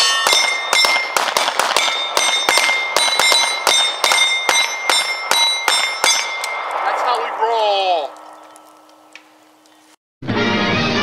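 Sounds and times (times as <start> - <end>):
high ringing tone: 0.0 - 1.2, 1.8 - 6.8
pistols firing rapidly: 0.2 - 6.2.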